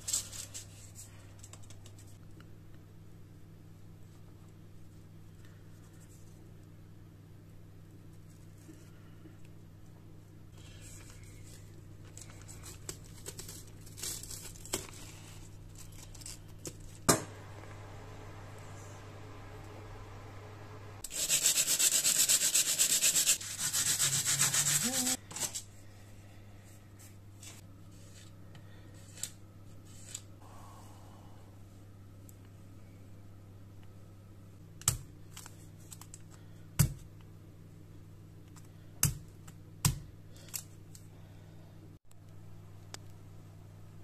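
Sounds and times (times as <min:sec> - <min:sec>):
blade rasping on sandpaper: 0:21.0 - 0:25.2.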